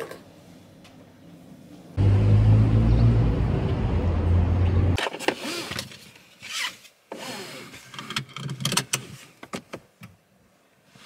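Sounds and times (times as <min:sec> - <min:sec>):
road noise: 0:00.2 - 0:05.0
car engine rumble: 0:02.0 - 0:05.0.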